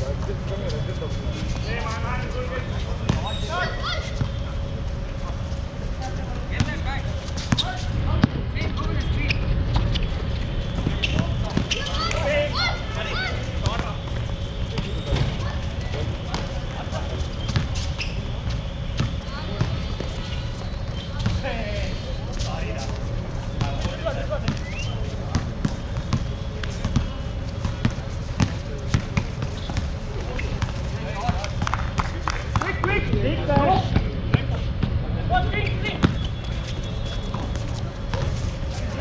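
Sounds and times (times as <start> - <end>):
players' voices and calls: 0.0 - 39.0
basketball bouncing on hard court: 25.3 - 29.9.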